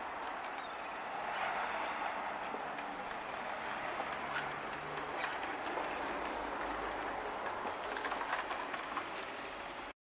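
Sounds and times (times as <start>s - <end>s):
wheelchair rolling on tarmac: 0.0s - 9.9s
small clicks and rattles: 2.4s - 9.4s.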